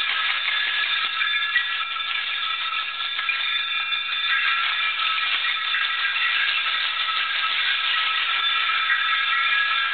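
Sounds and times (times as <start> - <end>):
high ringing tones: 0.0 - 9.9
percussion rattles shaking: 0.0 - 9.9.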